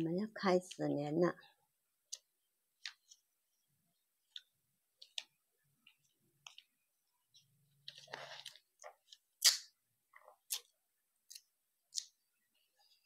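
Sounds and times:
paper rustling: 7.3s - 9.2s.

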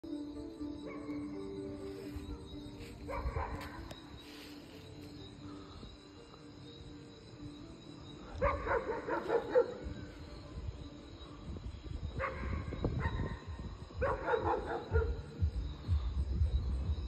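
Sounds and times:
dog barking: 3.1s - 3.9s, 8.4s - 9.9s, 12.2s - 13.4s, 14.0s - 15.3s.

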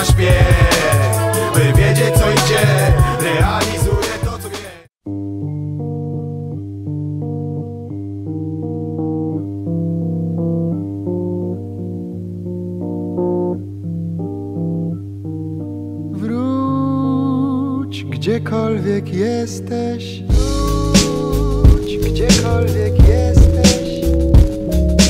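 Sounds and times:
guitar picking single notes: 5.0s - 25.0s
held bass note: 20.3s - 25.0s.

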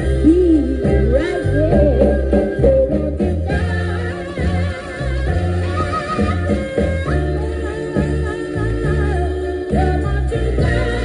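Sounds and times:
person singing: 0.0s - 6.2s, 6.8s - 11.0s
bass line: 0.0s - 11.0s
soul song on vinyl record: 0.0s - 11.0s.

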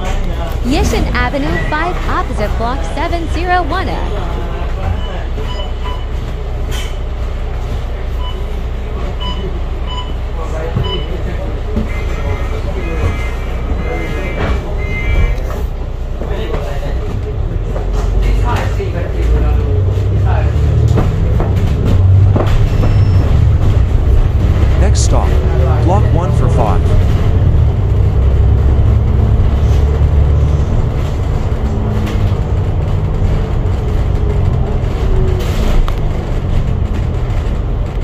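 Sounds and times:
bus diesel engine rumbling: 0.0s - 38.0s.

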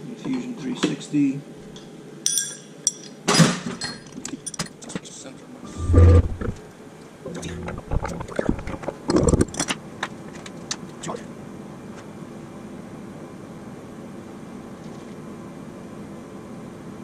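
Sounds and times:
tools clinking and clattering: 2.3s - 4.9s
heavy low thump: 5.8s - 6.6s.

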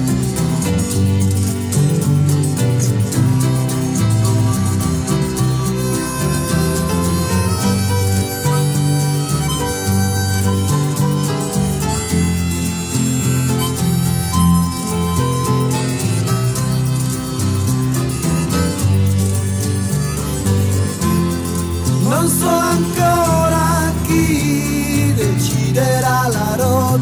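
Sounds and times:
progressive rock instrumental: 0.0s - 26.6s
bass line: 0.0s - 27.0s
lead instrument holding long notes: 4.5s - 25.3s.

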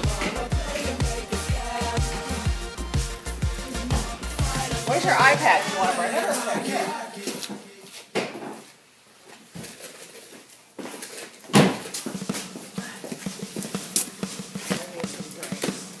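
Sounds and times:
thump: 11.5s - 12.4s.

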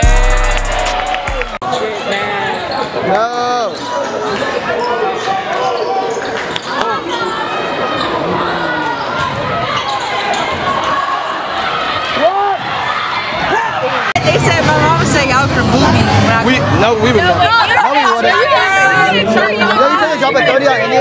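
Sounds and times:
crowd voices: 0.0s - 21.0s
sneakers squeaking: 8.0s - 10.9s.

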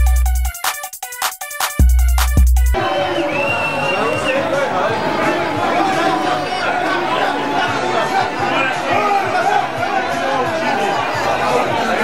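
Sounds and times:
crowd shouting and chattering: 2.7s - 12.0s.

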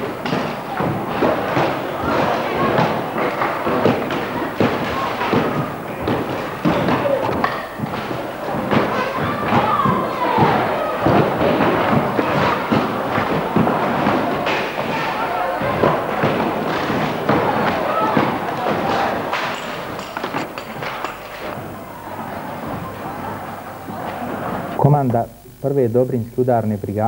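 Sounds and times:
wooden boards clattering: 0.0s - 24.8s
voices: 0.0s - 27.0s.

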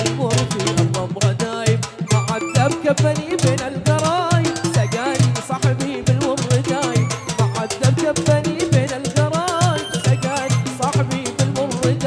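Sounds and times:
quick steady drumming: 0.0s - 12.0s
ornamented folk melody: 2.0s - 12.0s.

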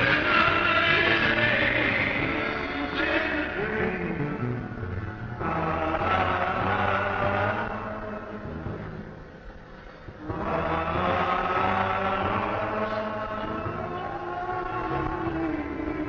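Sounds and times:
voices holding sustained chords: 0.0s - 16.0s.

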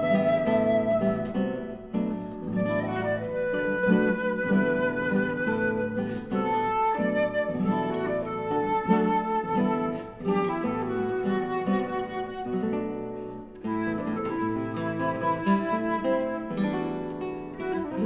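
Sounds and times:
flute melody: 0.0s - 18.0s
plucked guitar chords: 0.0s - 18.0s.

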